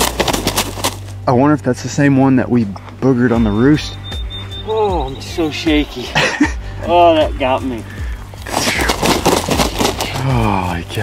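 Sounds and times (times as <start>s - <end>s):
turkey wings flapping: 0.0s - 1.2s, 7.8s - 11.0s.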